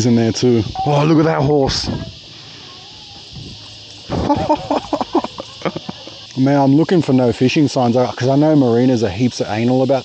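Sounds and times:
man laughing in bursts: 0:04.1 - 0:06.2.

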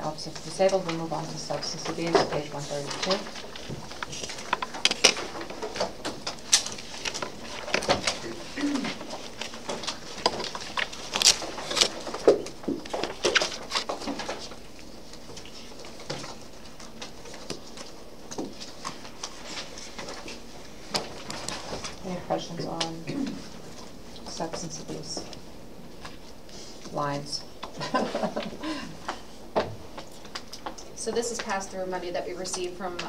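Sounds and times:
paper pages rustling: 0:00.3 - 0:22.0
person murmuring: 0:08.2 - 0:09.0.

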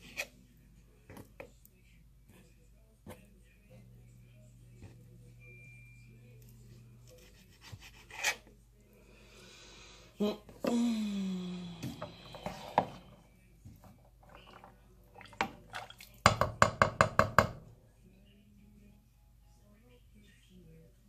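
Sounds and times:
utensil knocking against pot: 0:16.3 - 0:17.6.

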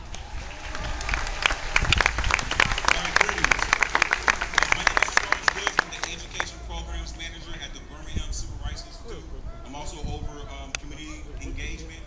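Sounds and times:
crowd clapping: 0:00.0 - 0:06.6
voices in crowd: 0:00.0 - 0:12.0.

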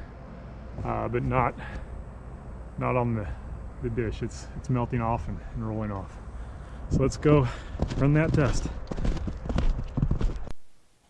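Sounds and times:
footsteps crunching through snow: 0:06.9 - 0:10.7.

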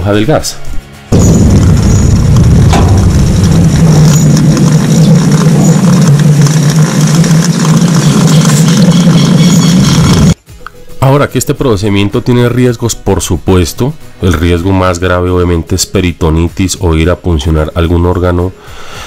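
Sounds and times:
gas rushing through needle: 0:01.1 - 0:10.4.

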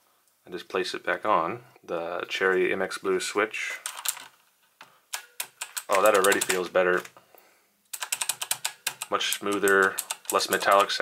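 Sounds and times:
mechanical keyboard keys clicking: 0:05.2 - 0:07.1, 0:07.9 - 0:11.0.

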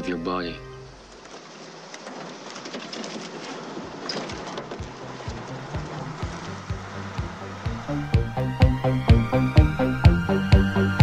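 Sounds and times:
rain-like hiss: 0:00.0 - 0:10.4.

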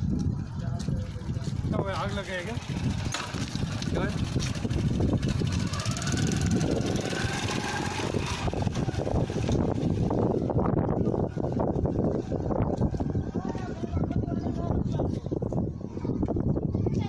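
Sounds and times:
vehicle engine low rumble: 0:00.0 - 0:17.0.

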